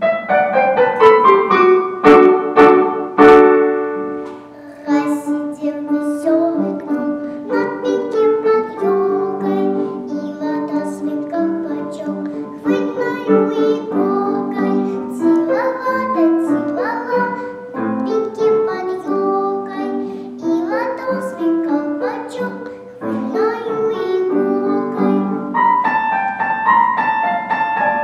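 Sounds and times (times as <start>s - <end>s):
piano accompaniment: 0.0s - 28.0s
girl singing: 4.4s - 25.7s.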